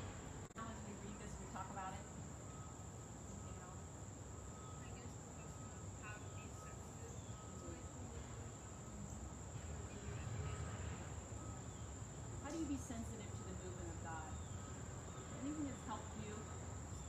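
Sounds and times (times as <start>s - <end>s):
insect chorus trilling: 0.1s - 17.0s.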